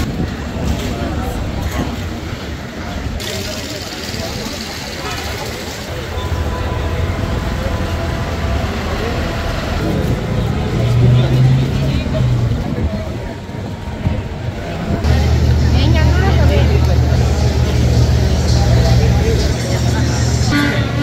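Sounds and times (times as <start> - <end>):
motor traffic rumble: 0.0 - 21.0
people talking: 0.0 - 21.0.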